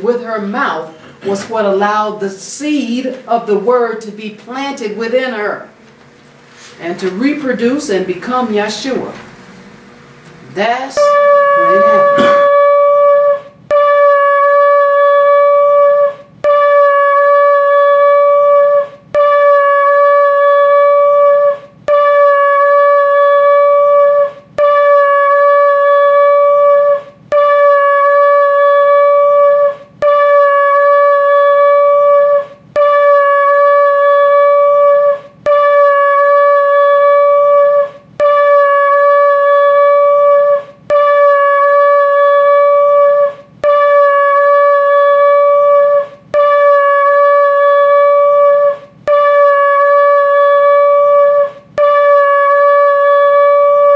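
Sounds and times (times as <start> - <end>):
shofar long blasts: 10.9 - 53.9.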